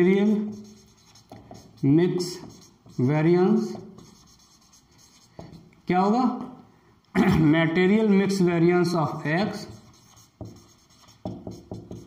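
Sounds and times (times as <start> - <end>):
marker pen scratching on whiteboard: 0.0 - 5.7, 9.5 - 12.0.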